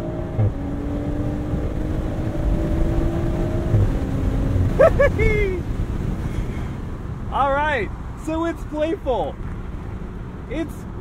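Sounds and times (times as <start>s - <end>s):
wind buffeting and road noise: 0.0s - 11.0s
person making drawn-out vocal sound: 4.8s - 5.6s.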